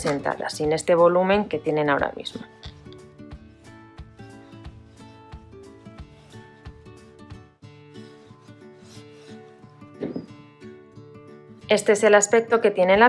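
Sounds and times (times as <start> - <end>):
soft plucked background music: 0.0 - 13.0
iron sliding over fabric: 7.9 - 10.2.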